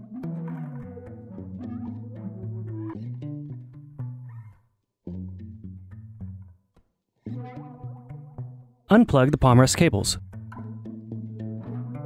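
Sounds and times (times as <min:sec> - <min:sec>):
music of held layered notes: 0:00.0 - 0:06.6, 0:07.2 - 0:08.8, 0:10.2 - 0:12.0.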